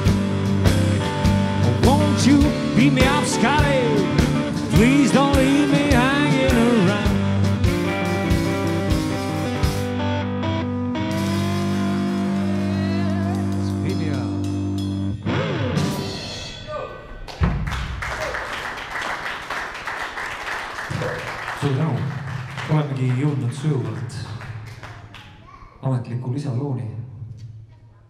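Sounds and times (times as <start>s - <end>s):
blues band playing: 0.0s - 17.2s
person singing: 1.6s - 7.6s, 12.1s - 13.9s
audience applause: 17.3s - 25.5s.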